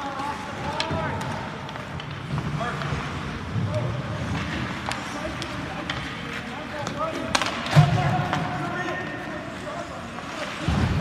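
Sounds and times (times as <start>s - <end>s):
hockey sticks clacking on puck: 0.0s - 9.3s.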